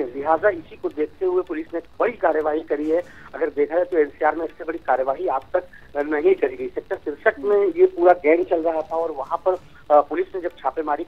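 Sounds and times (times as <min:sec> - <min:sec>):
man talking over a telephone: 0:00.0 - 0:11.0.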